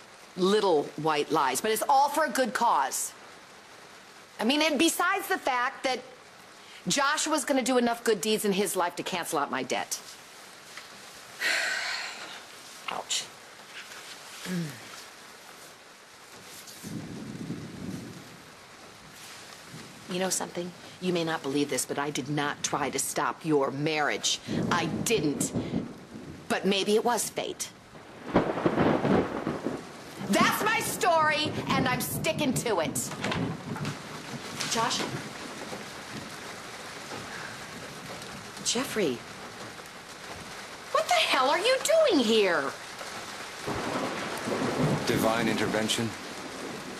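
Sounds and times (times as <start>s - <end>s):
steady rain: 0.0s - 46.9s
low rumble of thunder: 16.8s - 41.9s, 42.6s - 46.9s.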